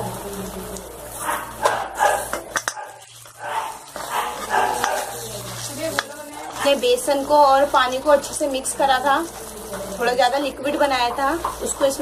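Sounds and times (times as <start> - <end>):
food sizzling in hot oil: 0.0 - 12.0
spoon knocking against pan: 1.6 - 2.9.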